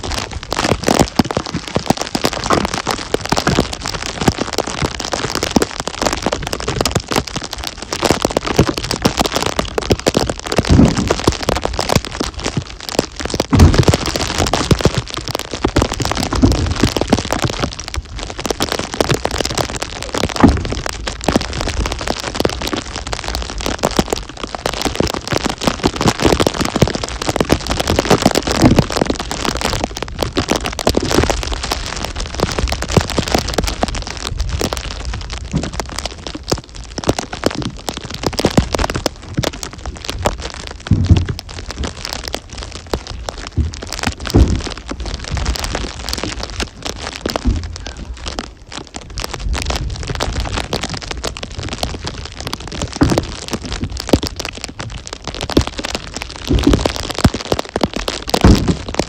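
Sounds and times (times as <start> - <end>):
snow pattering on microphone: 0.0 - 59.0
heavy thuds of firewood: 10.6 - 11.3, 13.5 - 14.2, 20.2 - 20.9, 40.9 - 41.5, 43.5 - 45.6, 47.3 - 48.0, 58.4 - 59.0.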